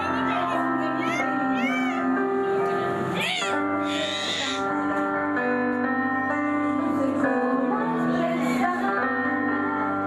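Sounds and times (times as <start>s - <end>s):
woman singing into a microphone: 0.0s - 5.4s, 6.6s - 10.0s
electronic keyboard chords: 0.0s - 10.0s.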